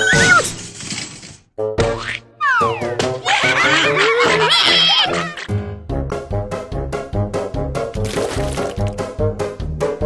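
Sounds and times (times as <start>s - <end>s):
children's show music: 1.8s - 8.0s.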